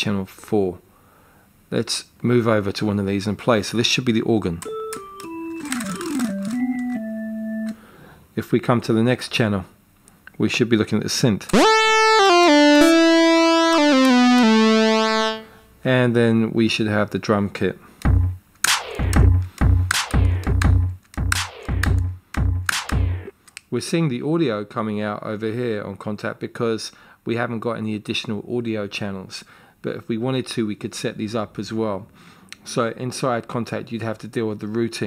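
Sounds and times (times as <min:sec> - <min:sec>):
sharp hits falling in pitch: 0:11.6 - 0:15.5
organ playing held notes: 0:11.6 - 0:15.6.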